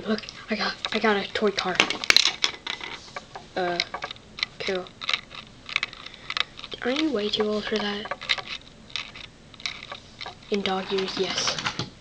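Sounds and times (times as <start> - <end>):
person speaking: 0.0 - 5.0, 5.8 - 11.8.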